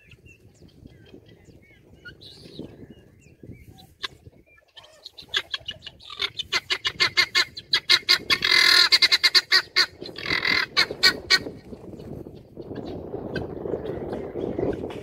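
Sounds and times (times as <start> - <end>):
guinea fowl calling: 3.5 - 11.5.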